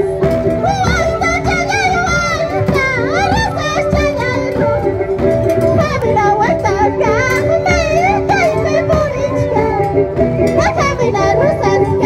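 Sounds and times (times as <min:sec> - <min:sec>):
held instrumental notes: 0:00.0 - 0:12.0.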